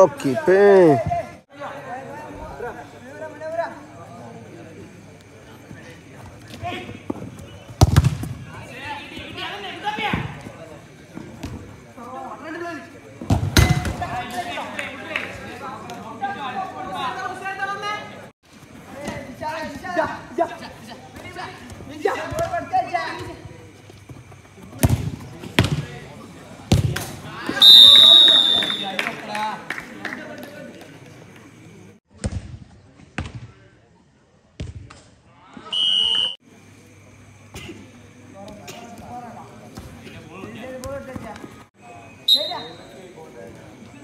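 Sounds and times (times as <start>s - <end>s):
football kicked hard: 7.8s - 8.4s
players shouting: 27.3s - 29.4s
referee's whistle blast: 27.6s - 29.0s, 35.6s - 36.4s, 42.3s - 42.9s.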